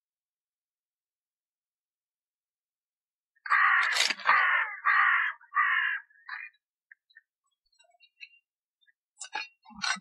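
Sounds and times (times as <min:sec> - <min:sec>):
crow cawing: 0:03.4 - 0:06.6.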